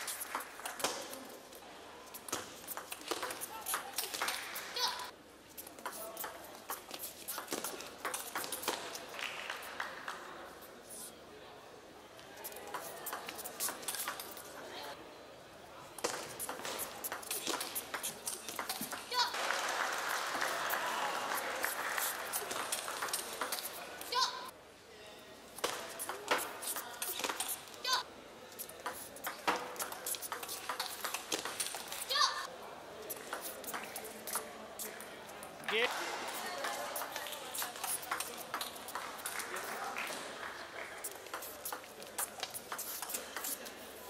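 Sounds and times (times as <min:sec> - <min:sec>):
audience applause and cheering: 0:19.3 - 0:23.1.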